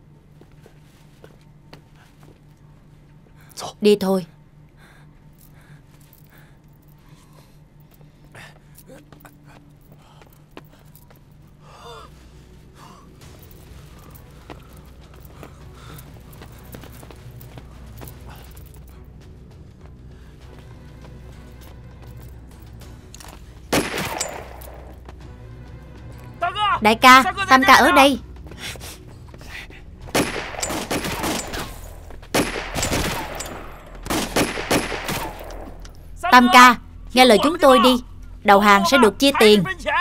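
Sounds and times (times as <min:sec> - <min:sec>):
tense film score drone: 0:00.0 - 0:40.0
gunfire burst: 0:23.7 - 0:24.6, 0:30.1 - 0:35.7.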